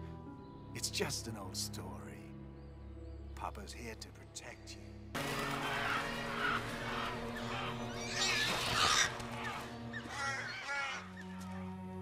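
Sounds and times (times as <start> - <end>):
film music with low notes: 0.0 - 12.0
wavering bird calls: 5.4 - 11.6.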